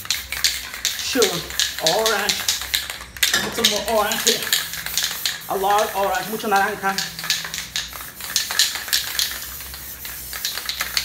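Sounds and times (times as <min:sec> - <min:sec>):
spray paint can hissing: 0:00.0 - 0:11.0.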